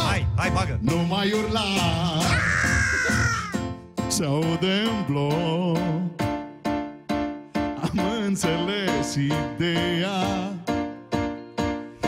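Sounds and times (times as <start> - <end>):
band music: 0.0 - 12.0
high raspy yell: 2.2 - 3.6.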